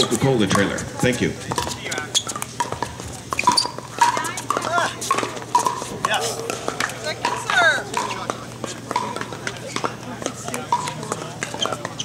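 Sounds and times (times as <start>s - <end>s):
voices of players: 0.0s - 12.0s.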